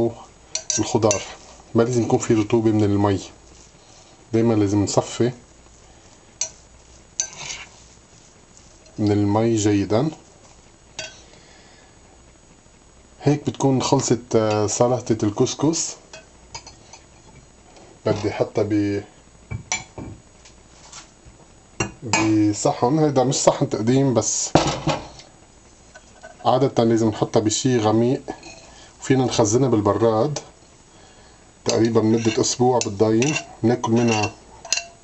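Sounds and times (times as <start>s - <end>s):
spoon scraping through grains: 0.5s - 2.6s, 6.4s - 9.1s, 31.7s - 35.0s
fork scraping glass jug: 7.2s - 7.8s, 31.7s - 35.0s
spoon clinking against glass: 33.2s - 35.0s.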